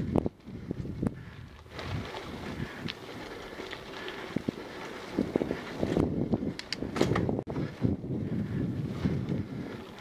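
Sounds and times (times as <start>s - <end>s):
wind rushing over microphone: 0.0s - 3.4s, 4.3s - 10.0s
bike rolling over trail: 0.0s - 10.0s.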